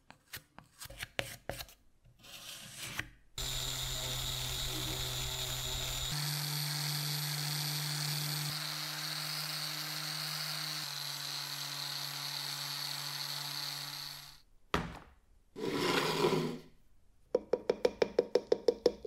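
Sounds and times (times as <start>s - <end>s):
power sander on metal: 3.4s - 14.4s.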